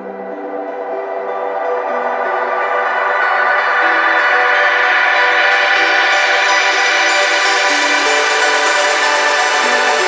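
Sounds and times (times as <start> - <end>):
trance synth chord: 0.0 - 10.0.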